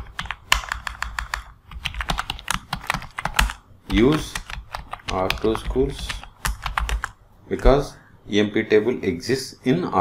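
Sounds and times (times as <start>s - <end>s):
computer keyboard typing: 0.0s - 7.2s.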